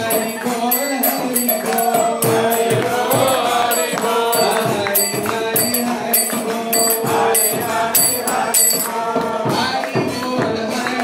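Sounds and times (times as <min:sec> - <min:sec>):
group chanting: 0:00.0 - 0:11.0
jingling hand percussion: 0:00.0 - 0:11.0.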